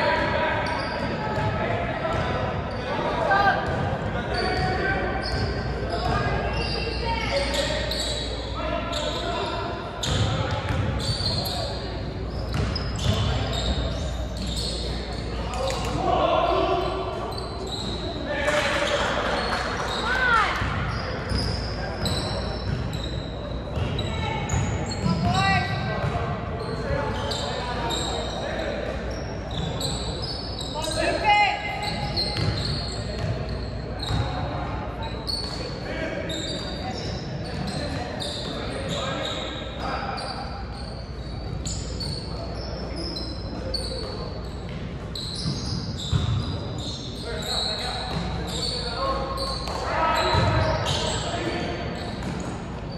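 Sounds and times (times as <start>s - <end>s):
sneaker squeaks: 0.0s - 52.9s
basketball bouncing on wooden court: 10.0s - 11.1s, 12.5s - 13.3s, 32.1s - 33.4s, 45.4s - 46.4s, 49.7s - 50.7s.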